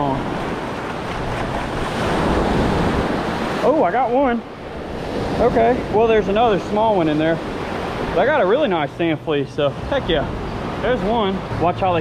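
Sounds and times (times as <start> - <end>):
small surf waves washing: 0.0 - 12.0.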